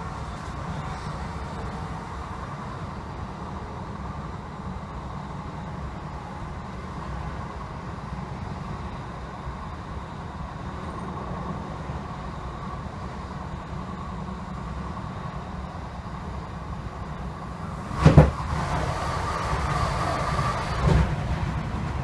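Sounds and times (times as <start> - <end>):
high train running noise: 0.0 - 22.0
train wheels rumbling on rails: 0.0 - 22.0.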